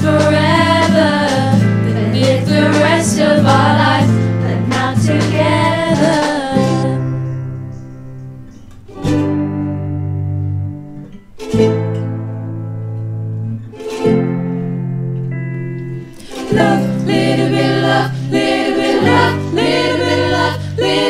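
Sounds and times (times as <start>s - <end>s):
girls singing: 0.0s - 7.3s, 16.2s - 21.0s
ukulele chords strummed: 0.0s - 21.0s.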